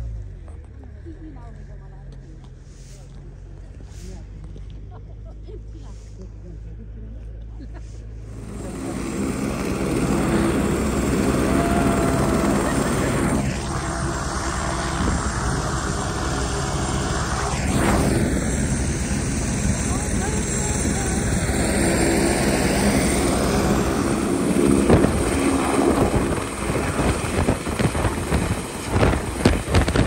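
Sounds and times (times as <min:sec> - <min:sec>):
engine drone: 0:06.1 - 0:30.0
rushing noise: 0:08.3 - 0:30.0.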